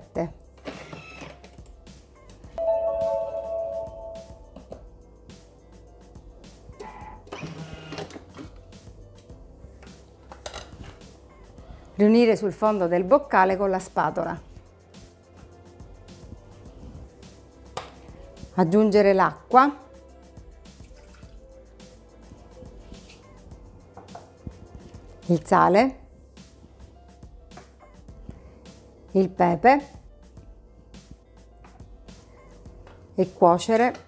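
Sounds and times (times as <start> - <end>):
soft background music: 0.0 - 34.0.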